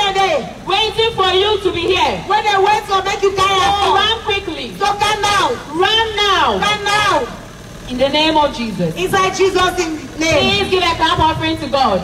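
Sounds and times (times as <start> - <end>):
woman speaking over a pa: 9.0 - 11.7.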